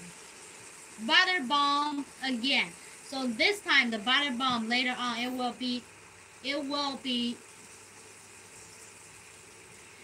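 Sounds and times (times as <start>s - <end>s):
chicken sizzling in a pan: 0.0s - 10.0s.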